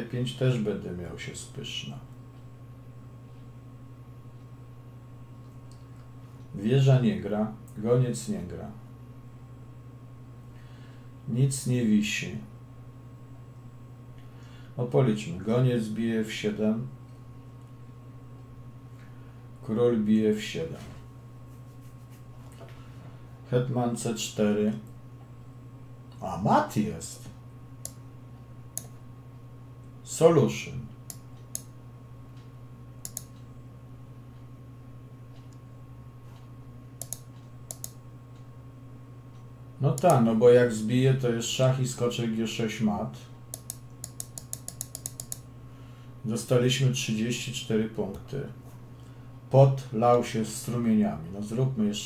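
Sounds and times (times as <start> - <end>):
steady low hum: 0.0 - 52.0
typing on computer keyboard: 43.6 - 45.4.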